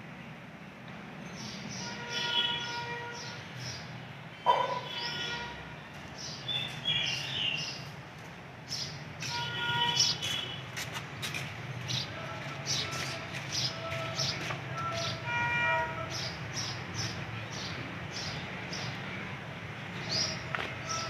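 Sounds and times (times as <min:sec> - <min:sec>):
small birds chirping: 0:06.2 - 0:07.9.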